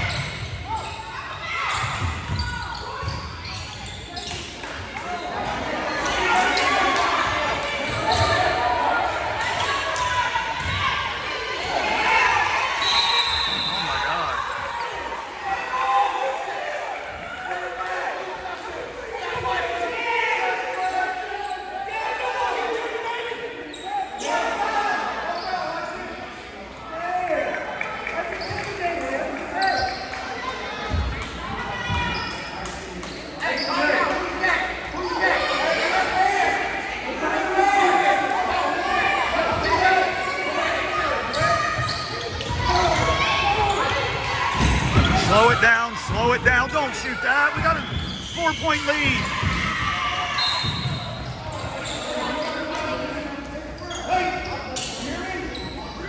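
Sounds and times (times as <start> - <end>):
echoing voices: 42.5 - 50.0.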